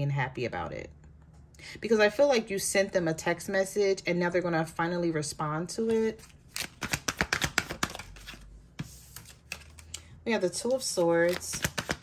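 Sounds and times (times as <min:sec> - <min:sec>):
cards being shuffled by hand: 0:05.9 - 0:10.0, 0:10.6 - 0:12.0.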